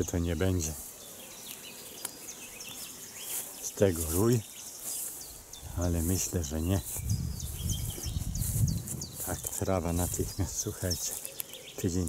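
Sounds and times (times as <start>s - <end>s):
bees buzzing: 0.3s - 12.0s.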